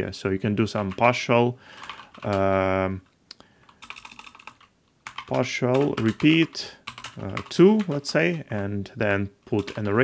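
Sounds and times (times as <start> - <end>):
keyboard keys clicking: 3.7 - 8.4, 9.6 - 10.0.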